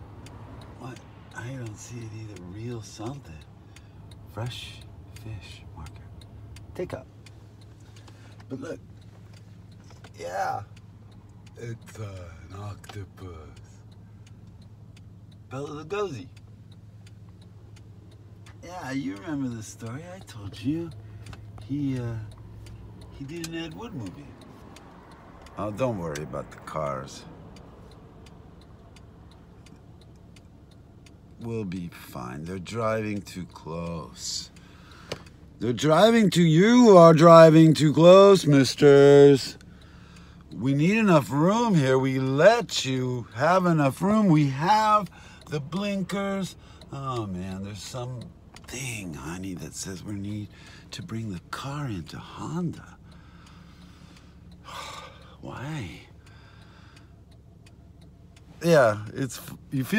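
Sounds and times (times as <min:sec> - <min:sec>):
low rumble in car cabin: 0:00.0 - 0:59.9.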